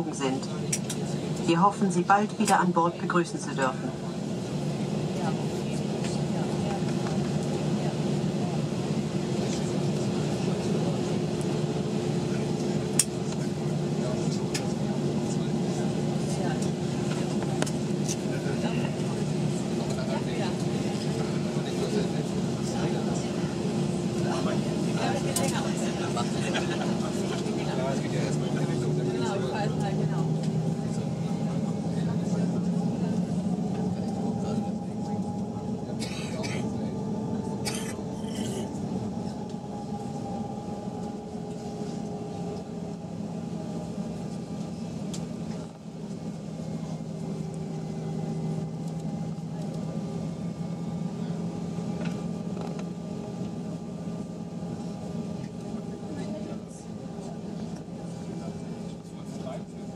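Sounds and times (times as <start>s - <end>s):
airplane engines humming: 0.0s - 59.9s
murmur of passenger voices: 0.0s - 59.9s.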